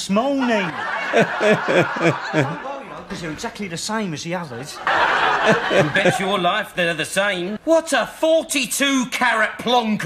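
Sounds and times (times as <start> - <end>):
man chuckling: 1.1 - 2.6, 5.4 - 6.2.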